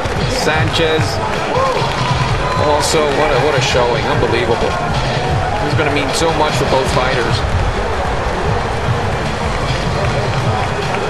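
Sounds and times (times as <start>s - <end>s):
indistinct voices: 0.0s - 11.0s
venue background noise: 0.0s - 11.0s.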